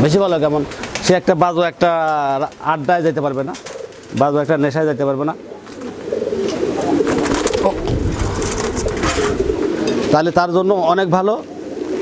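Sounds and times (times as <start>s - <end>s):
pigeons cooing: 0.0s - 12.0s
low rumble: 7.5s - 9.8s.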